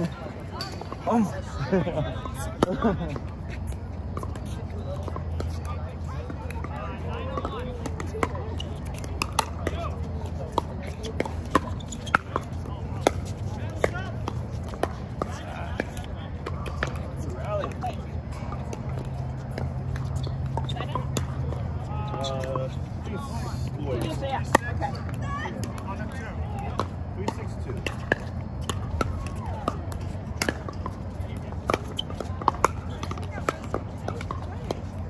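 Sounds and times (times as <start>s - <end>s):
background chatter: 0.0s - 35.0s.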